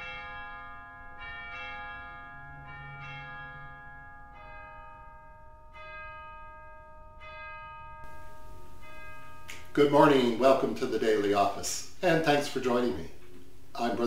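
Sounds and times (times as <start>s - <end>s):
bells tolling slowly: 0.0s - 12.0s.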